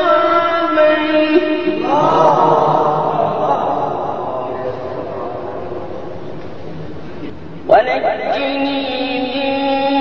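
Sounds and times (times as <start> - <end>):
man chanting recitation: 7.7 - 10.0.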